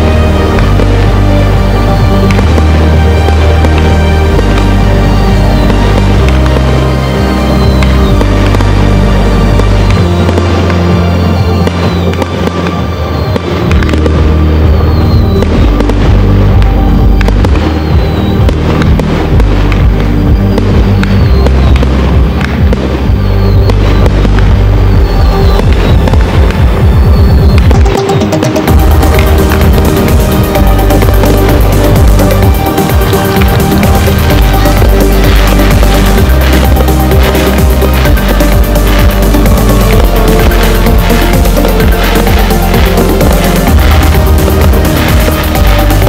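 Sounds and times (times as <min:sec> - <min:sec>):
fireworks bangs and crackles: 0:00.0 - 0:46.0
loud music with heavy bass: 0:00.0 - 0:46.0.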